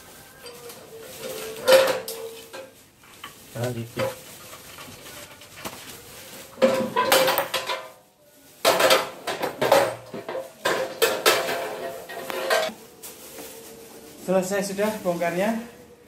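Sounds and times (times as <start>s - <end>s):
steel frame clanking on tiles: 0.4s - 2.8s, 6.6s - 8.0s, 8.6s - 12.7s.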